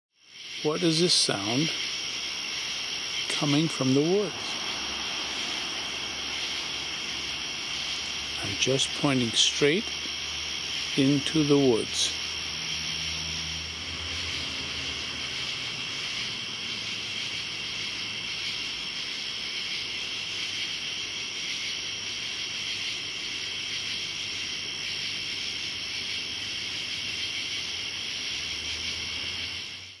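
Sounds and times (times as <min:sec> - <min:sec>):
night insects chorus: 0:00.2 - 0:30.0.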